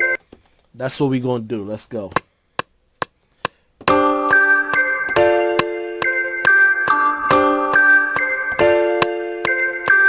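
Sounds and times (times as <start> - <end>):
sampled keyboard melody: 0.0 - 0.2, 3.8 - 10.0.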